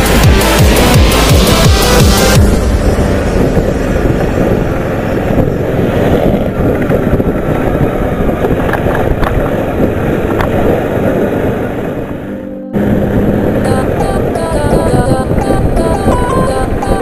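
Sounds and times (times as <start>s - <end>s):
motorcycle engine: 0.0s - 15.8s
wind noise: 0.0s - 17.0s.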